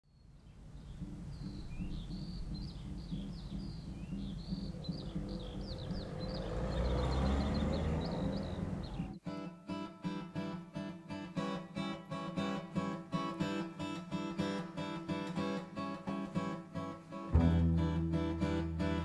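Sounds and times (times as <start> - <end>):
birds chirping: 0.1 - 9.2
acoustic guitar plucked: 0.9 - 7.1, 9.2 - 19.0
low outdoor rumble: 1.2 - 9.2.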